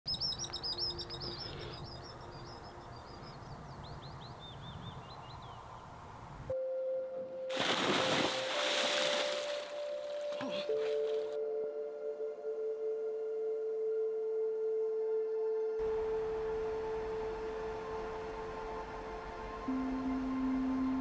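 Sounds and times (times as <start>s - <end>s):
small birds singing: 0.1s - 6.1s
held musical tone: 6.5s - 21.0s
rush of churning water: 7.5s - 9.8s.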